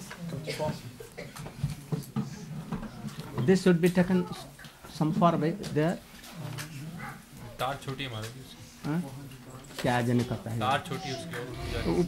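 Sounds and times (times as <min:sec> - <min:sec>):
low voices murmuring: 0:10.8 - 0:12.0
short louder vocal sound: 0:11.4 - 0:12.0.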